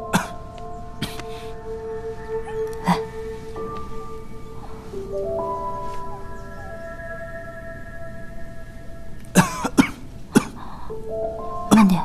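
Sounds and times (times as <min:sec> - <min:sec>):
slow held music notes: 0:00.0 - 0:12.0
person coughing: 0:00.1 - 0:00.4, 0:09.4 - 0:10.6.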